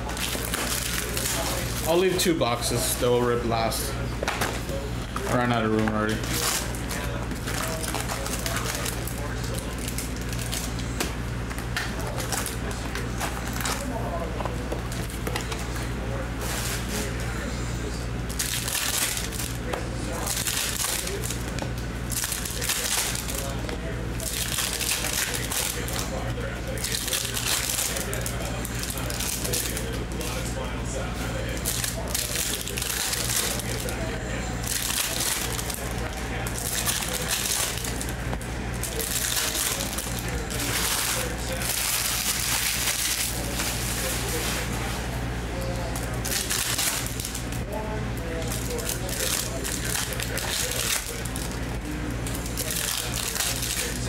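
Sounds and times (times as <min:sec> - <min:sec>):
foil wrappers crinkling and tearing: 0:00.0 - 0:17.5, 0:18.2 - 0:54.0.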